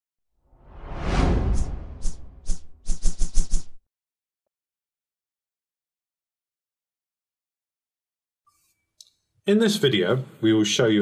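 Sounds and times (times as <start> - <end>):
whoosh sound effect: 0.6 - 3.8
short high swish: 0.7 - 3.8.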